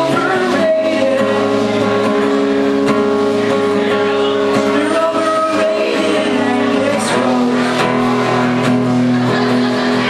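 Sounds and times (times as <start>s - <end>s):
acoustic guitar strummed: 0.0s - 10.0s.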